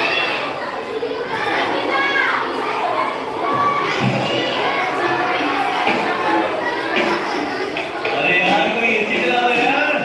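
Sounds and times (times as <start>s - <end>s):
children talking and calling out: 0.0s - 10.0s.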